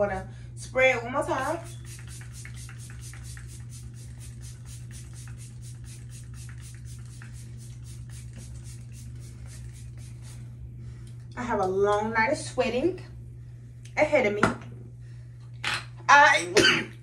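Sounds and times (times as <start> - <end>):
steady low hum: 0.0 - 17.0
spray bottle spritzes: 1.5 - 10.4.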